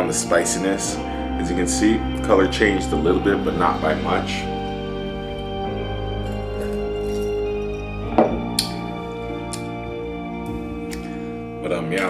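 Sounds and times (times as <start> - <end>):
background music with held notes: 0.0 - 12.0.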